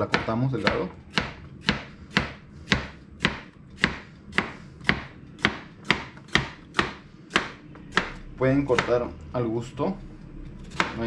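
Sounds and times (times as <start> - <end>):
knife chopping on plastic board: 0.0 - 9.0, 10.7 - 11.0.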